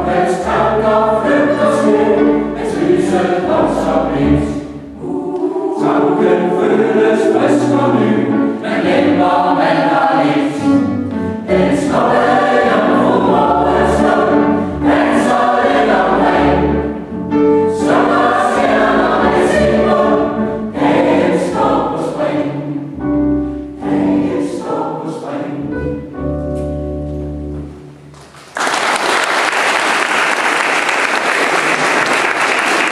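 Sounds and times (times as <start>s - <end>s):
mixed choir singing: 0.0s - 23.0s, 23.8s - 26.0s
singers breathing: 23.3s - 23.8s.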